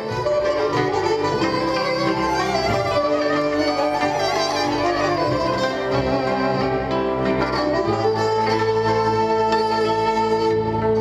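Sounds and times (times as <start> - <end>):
folk band playing: 0.0 - 11.0
violin leading: 0.0 - 11.0.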